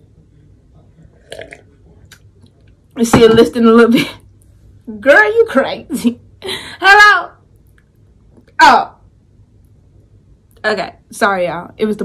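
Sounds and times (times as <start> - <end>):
person gulping a drink: 1.2 - 2.3.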